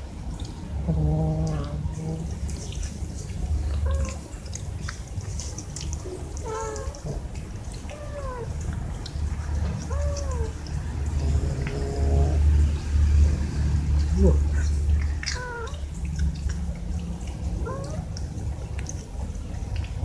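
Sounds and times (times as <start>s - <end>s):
cats meowing: 3.7s - 4.6s, 6.0s - 8.8s, 9.5s - 12.4s, 15.1s - 16.0s, 17.6s - 18.2s.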